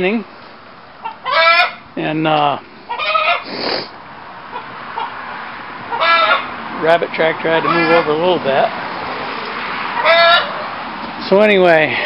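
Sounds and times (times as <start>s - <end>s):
steady background hiss: 0.0s - 9.7s
chicken squawk: 1.0s - 1.9s, 2.9s - 3.9s, 4.5s - 5.2s, 5.9s - 6.6s, 7.6s - 8.2s, 9.9s - 10.8s.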